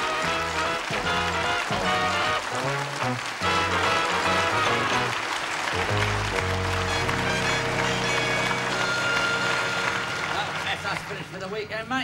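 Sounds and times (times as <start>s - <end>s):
theme music with held chord: 0.0s - 11.0s.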